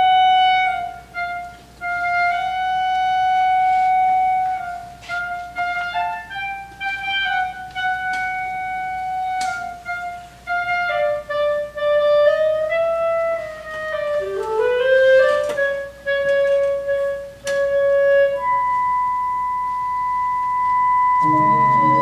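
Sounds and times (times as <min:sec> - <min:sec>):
solo clarinet melody: 0:00.0 - 0:22.0.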